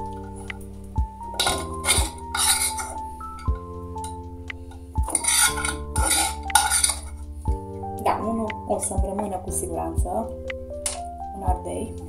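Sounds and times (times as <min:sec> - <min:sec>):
metal utensil scraping dishware: 0:01.3 - 0:03.0, 0:05.0 - 0:07.2.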